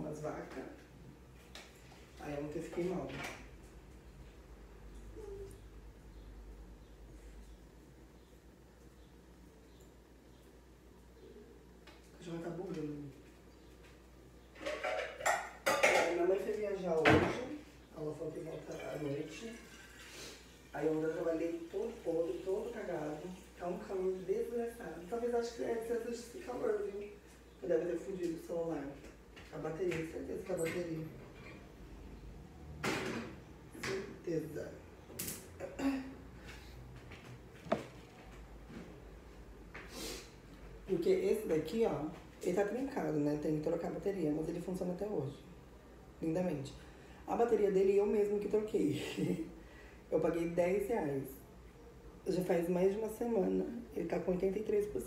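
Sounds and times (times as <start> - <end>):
dishes and cutlery clattering: 14.6 - 16.3.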